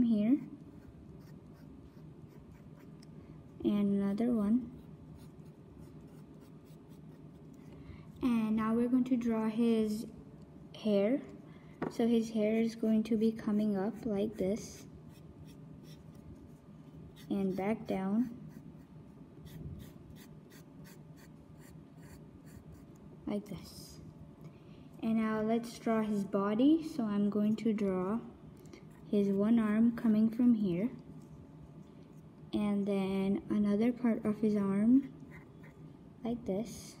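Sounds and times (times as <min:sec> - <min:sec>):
pencil scratching on paper: 0:00.3 - 0:03.0, 0:04.7 - 0:07.6, 0:13.4 - 0:22.9.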